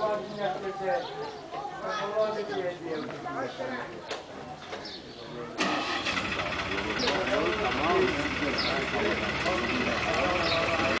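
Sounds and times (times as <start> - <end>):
men talking: 0.0 - 11.0
vehicle engine starting and running: 5.6 - 11.0.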